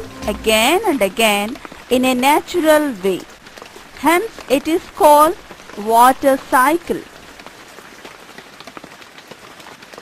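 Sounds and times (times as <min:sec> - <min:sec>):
rain hissing: 0:00.0 - 0:10.0
raindrops ticking: 0:00.0 - 0:10.0.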